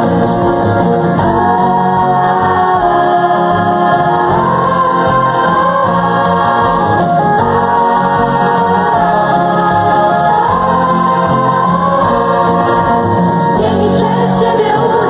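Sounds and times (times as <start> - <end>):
band playing: 0.0 - 15.0
choir singing: 0.0 - 15.0
girls singing into microphones: 1.1 - 15.0.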